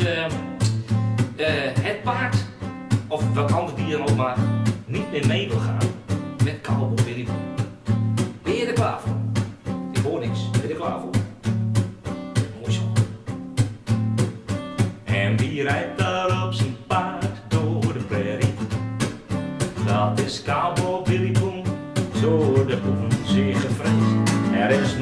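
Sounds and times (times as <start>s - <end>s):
acoustic guitar strumming: 0.0s - 25.0s.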